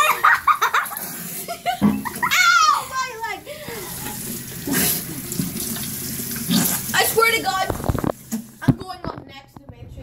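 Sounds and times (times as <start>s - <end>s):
tap water running into sink: 0.0s - 9.1s.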